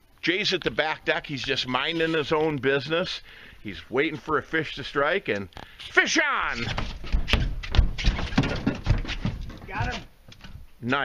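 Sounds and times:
footfalls and thumps on boat deck: 6.5s - 10.7s.

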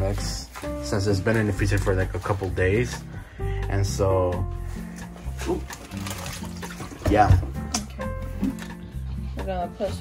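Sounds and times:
background music with low bass: 0.0s - 10.0s.

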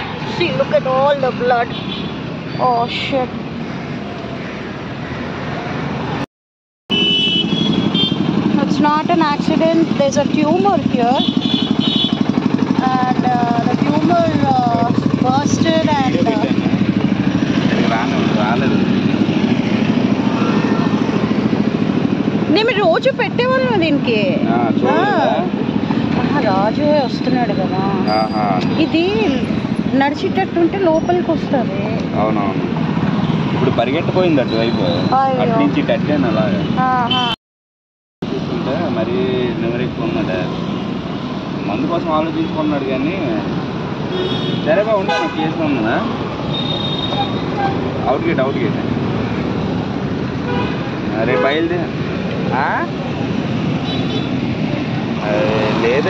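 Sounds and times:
passing traffic: 0.0s - 6.3s, 6.9s - 37.4s, 38.2s - 56.0s
vehicle horn toots: 6.9s - 8.4s, 11.1s - 12.3s, 28.0s - 28.6s, 34.4s - 35.2s, 44.1s - 45.8s, 46.5s - 47.8s, 50.5s - 51.7s
vehicle engine running: 7.5s - 28.0s.

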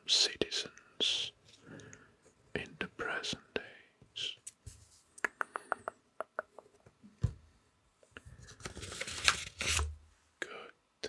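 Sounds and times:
person whispering: 0.0s - 1.9s, 2.5s - 4.4s, 5.2s - 6.6s, 10.4s - 10.8s.

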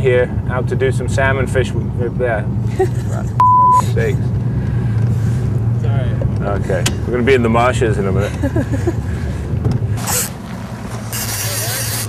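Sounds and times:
boat motor humming: 1.7s - 12.0s.

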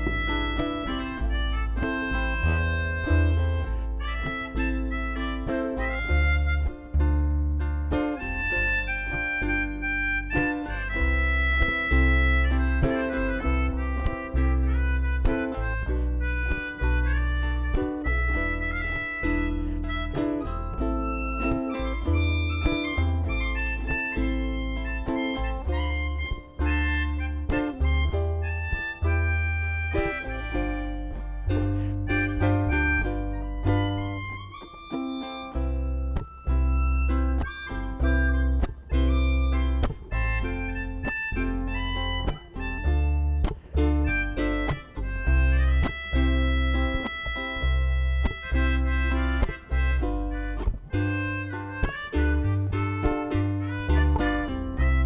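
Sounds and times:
bass: 0.0s - 55.0s
melodica melody: 0.0s - 55.0s
steady beat: 0.0s - 55.0s.

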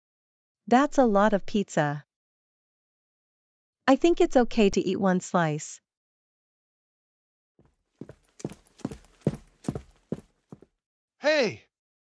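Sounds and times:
footsteps on hard floor: 8.0s - 10.6s.

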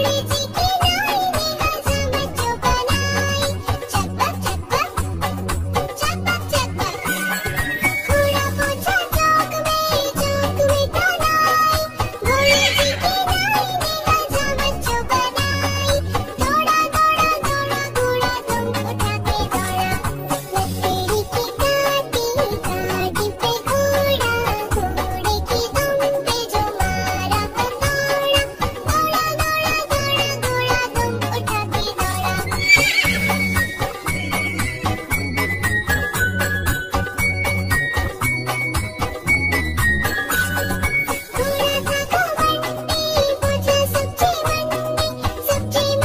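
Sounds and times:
children's song backing music: 0.0s - 46.0s
cartoon horse whinny: 12.3s - 13.4s, 32.5s - 35.0s.

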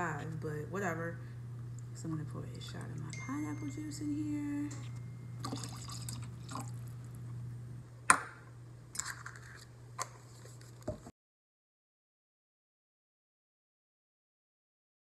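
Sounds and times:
juice pouring into plastic shaker: 5.4s - 6.9s.

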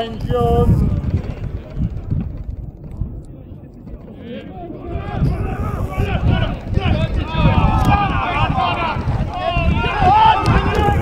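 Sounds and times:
wind rumble on microphone: 0.0s - 11.0s
voices shouting: 4.1s - 11.0s.

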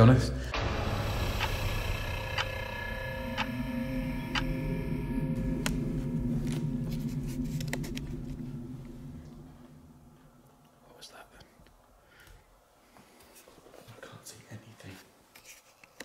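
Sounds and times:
low drone: 0.0s - 12.0s
steady tone: 0.5s - 11.0s
clock ticking: 0.6s - 4.8s.

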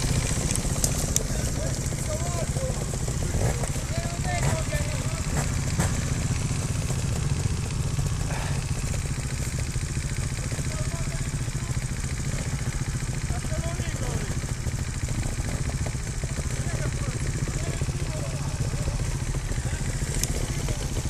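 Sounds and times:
motorcycle engine idling: 0.0s - 21.0s.

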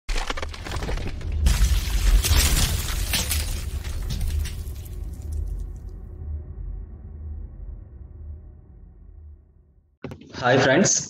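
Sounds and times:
stone cracking and debris clatter: 0.1s - 5.9s
low rumble: 2.8s - 10.0s.

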